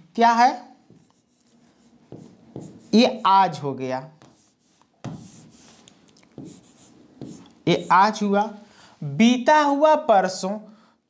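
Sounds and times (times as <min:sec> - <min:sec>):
faint scratchy pen strokes: 0:00.9 - 0:03.2, 0:04.2 - 0:08.0.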